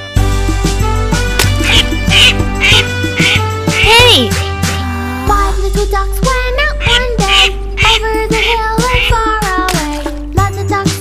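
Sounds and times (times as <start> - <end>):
upbeat children's song instrumental: 0.0 - 11.0
cartoon duckling quacks: 1.4 - 4.5, 6.6 - 9.5.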